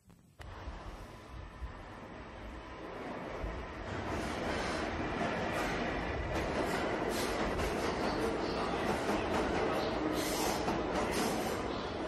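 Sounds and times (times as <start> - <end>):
subway train rumbling clatter: 0.4 - 12.0.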